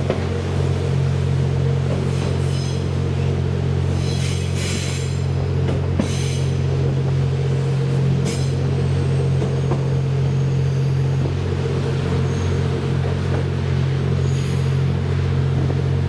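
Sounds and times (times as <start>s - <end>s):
train engine drone: 0.0s - 16.0s.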